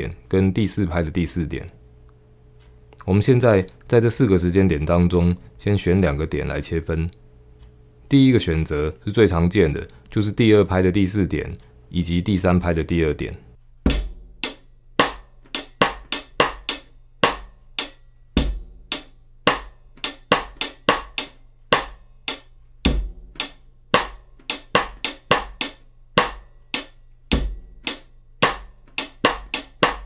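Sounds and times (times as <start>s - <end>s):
closed hi-hat strokes: 7.4s - 30.0s
bass drum: 13.9s - 17.5s, 18.4s - 21.2s, 22.9s - 25.6s, 27.4s - 27.8s, 28.4s - 30.0s
snare drum hits: 15.0s - 17.4s, 21.8s - 22.0s, 22.9s - 26.4s, 28.4s - 30.0s.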